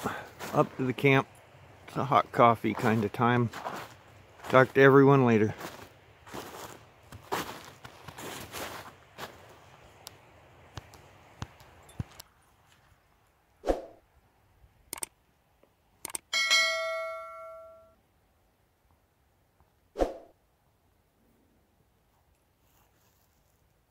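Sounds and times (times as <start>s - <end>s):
footsteps in snow: 0.0s - 1.2s, 1.8s - 10.0s, 22.6s - 23.9s
bell chime: 16.3s - 18.0s.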